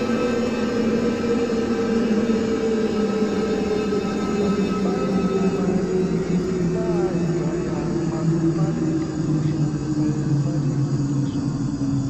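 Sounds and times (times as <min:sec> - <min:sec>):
low held drone tones: 0:00.0 - 0:12.0.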